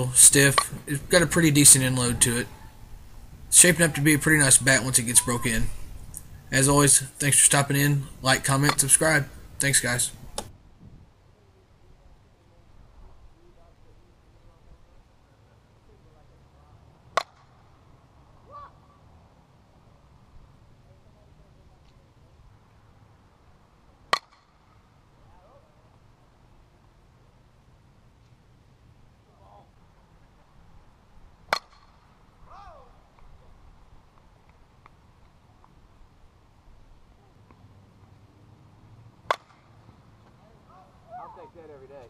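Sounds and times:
bat cracking against softball: 8.6s - 9.0s, 10.2s - 10.5s, 17.1s - 17.8s, 24.1s - 24.8s, 31.4s - 32.3s, 39.2s - 40.4s.

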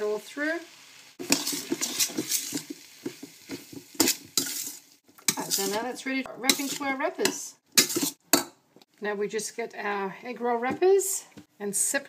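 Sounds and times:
metal spoon scraping in a wok: 1.2s - 8.2s.

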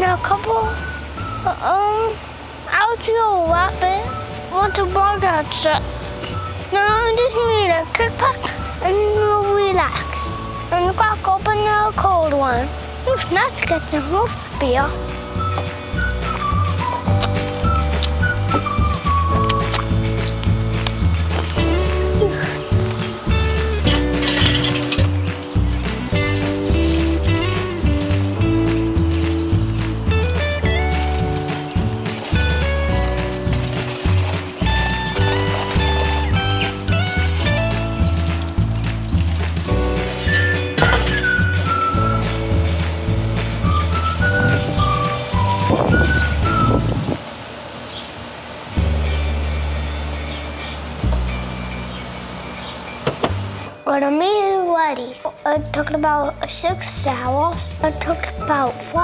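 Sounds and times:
held melody notes: 3.1s - 47.4s
steady bass line: 3.5s - 47.2s, 48.8s - 53.7s.

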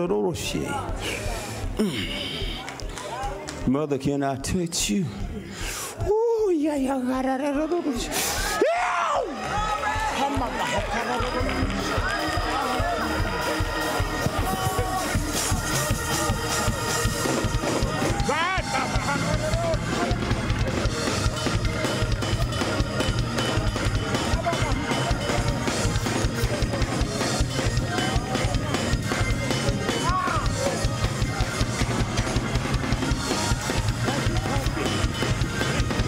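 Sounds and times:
up-tempo gospel music: 7.5s - 36.0s
bass: 8.5s - 36.0s
fast drum beat: 9.2s - 36.0s.

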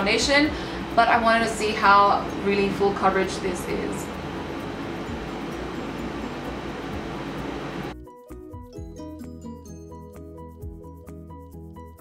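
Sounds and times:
air conditioner noise: 0.0s - 7.9s
tinkly background music: 4.7s - 12.0s.

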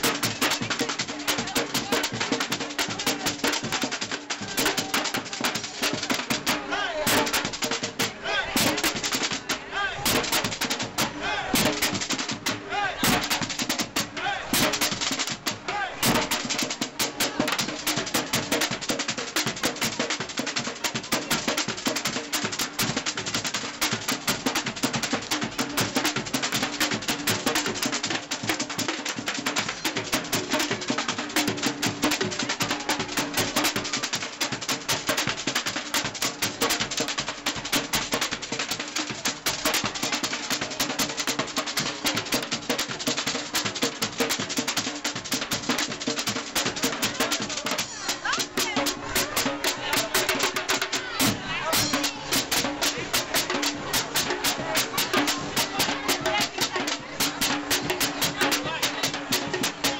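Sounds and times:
crowd voices: 0.0s - 59.9s
street drum band playing: 0.0s - 59.9s.

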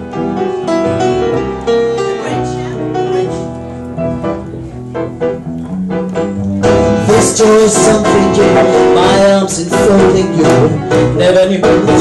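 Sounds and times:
jazz combo playing: 0.0s - 12.0s.

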